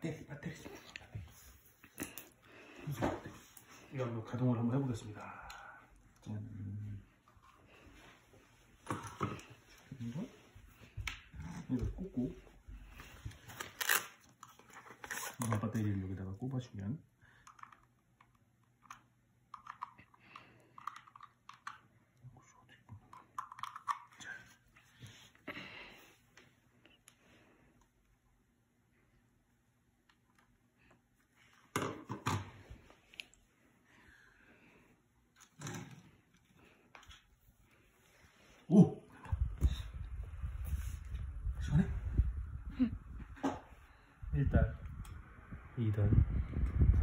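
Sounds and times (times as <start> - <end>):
cable rustling: 12.8 - 15.9
fan airflow buffeting microphone: 39.3 - 47.0.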